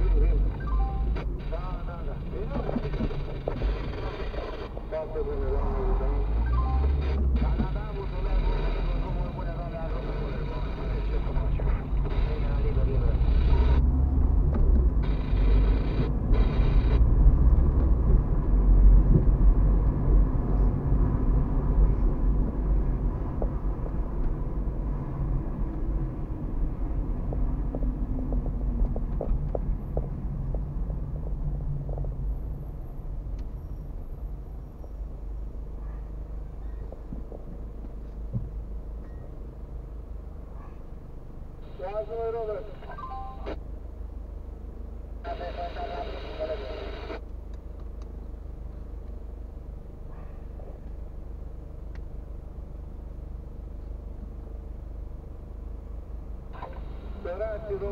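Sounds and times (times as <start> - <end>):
car road and engine rumble: 0.0 - 57.9.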